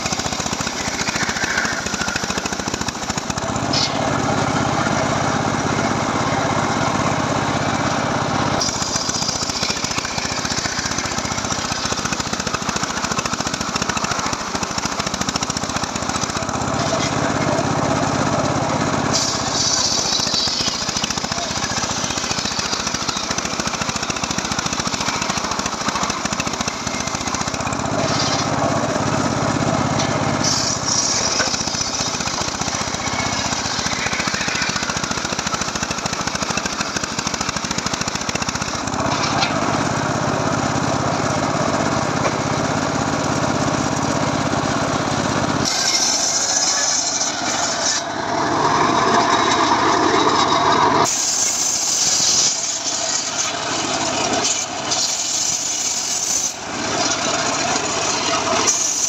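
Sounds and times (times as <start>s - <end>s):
circular saw cutting through log: 0.0s - 59.0s.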